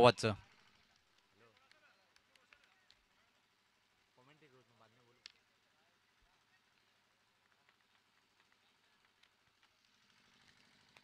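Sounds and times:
faint ticks: 5.0s - 5.7s, 6.7s - 11.0s.

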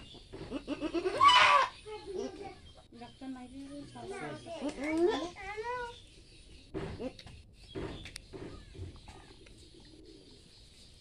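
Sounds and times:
goat bleating loudly: 0.5s - 1.7s.

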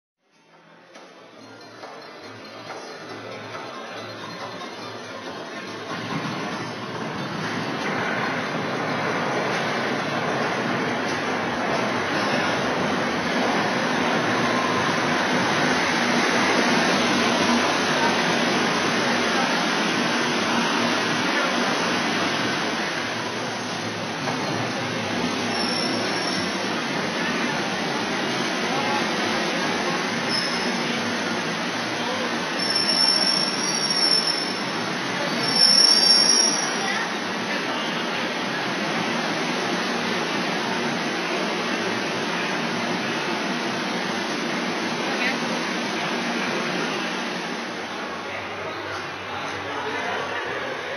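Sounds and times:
train rumble and hiss: 2.0s - 50.9s
metallic brake squeals: 25.5s - 26.6s, 30.3s - 30.8s, 32.6s - 34.7s, 35.3s - 37.0s.

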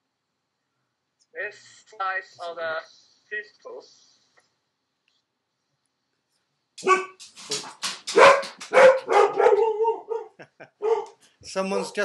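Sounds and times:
dog barking: 6.8s - 7.2s, 8.1s - 12.0s.

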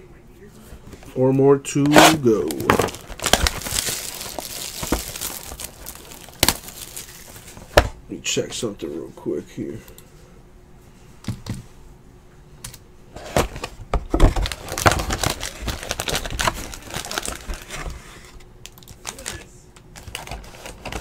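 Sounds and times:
card packs crackling and rustling: 1.9s - 7.8s, 13.3s - 18.1s, 18.7s - 21.0s.

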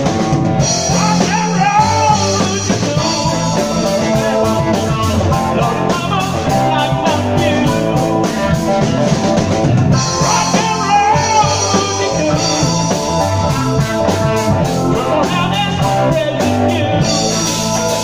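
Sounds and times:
bass guitar: 0.0s - 18.0s
drum kit: 0.0s - 18.0s
electric guitars: 0.0s - 18.0s
keyboards: 0.0s - 18.0s.

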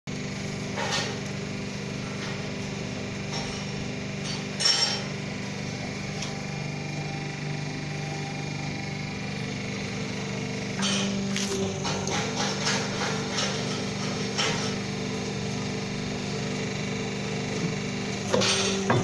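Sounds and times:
machine motor hum: 0.1s - 19.0s.

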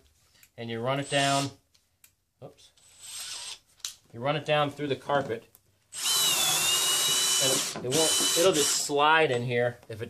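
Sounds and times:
cordless drill whining: 2.8s - 3.6s, 5.9s - 9.0s.

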